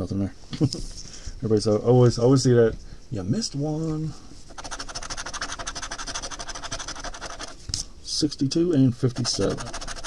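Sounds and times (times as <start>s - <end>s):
coin scratching lottery ticket: 4.5s - 7.6s, 9.1s - 10.0s.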